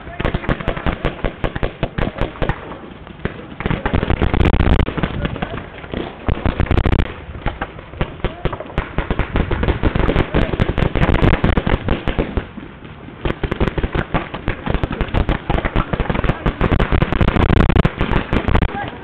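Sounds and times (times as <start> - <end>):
paintball markers firing: 13.3 - 18.8.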